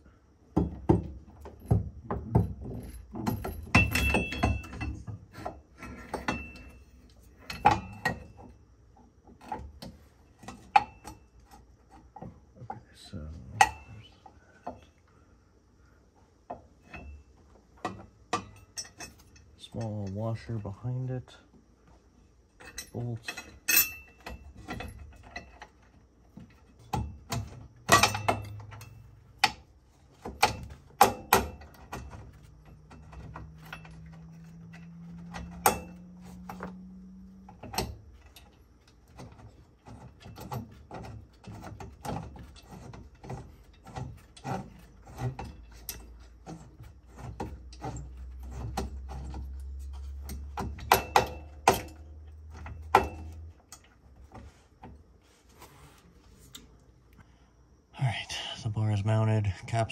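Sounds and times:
metal hardware clicking: 26.8 - 46.6
low hum: 31.4 - 39.5.

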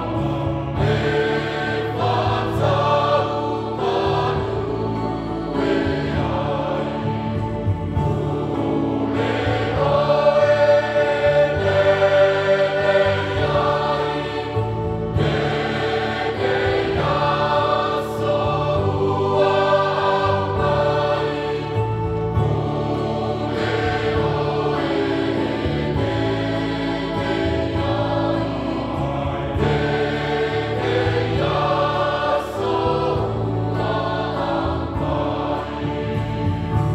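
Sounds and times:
electronic keyboard: 0.0 - 36.9
mixed choir singing a hymn: 0.0 - 36.9.

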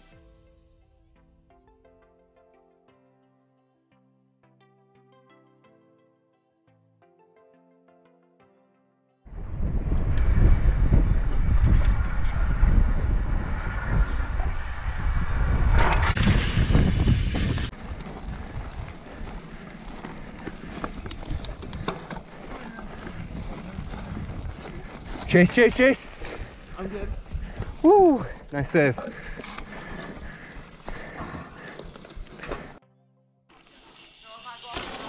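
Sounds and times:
wind rumble on microphone: 9.3 - 28.3
tyres on dirt: 15.8 - 32.8, 33.6 - 35.0
bike clicks and rattles: 16.1 - 27.8, 29.0 - 32.8.

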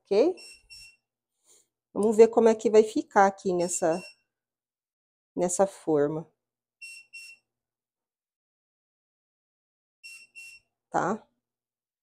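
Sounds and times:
oven electronic beeps: 0.3 - 1.0, 3.6 - 4.2, 6.8 - 7.4, 10.0 - 10.6.

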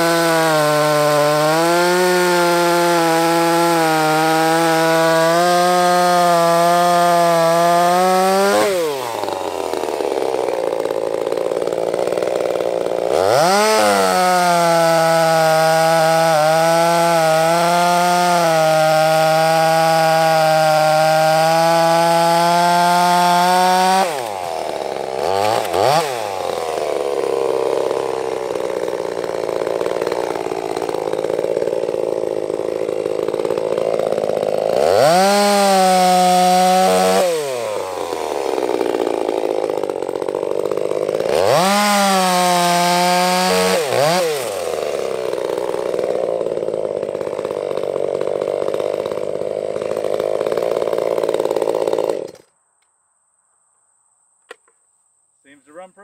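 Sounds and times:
chainsaw cutting wood: 0.0 - 52.6, 54.4 - 54.8.

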